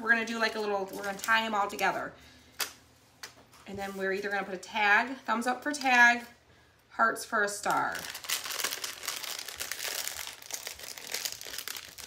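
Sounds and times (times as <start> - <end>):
plastic bag crinkling: 7.9 - 12.0.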